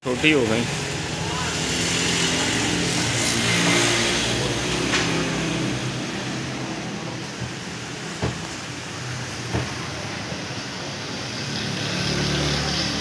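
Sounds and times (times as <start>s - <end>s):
vehicle engine passing: 1.4s - 13.0s.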